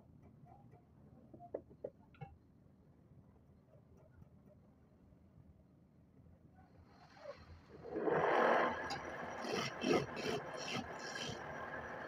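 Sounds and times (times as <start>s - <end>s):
chisel scraping wood on lathe: 8.9s - 12.0s.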